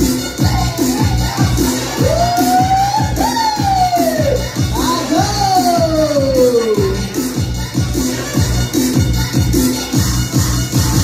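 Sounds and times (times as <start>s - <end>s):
loud dance music: 0.0s - 11.0s.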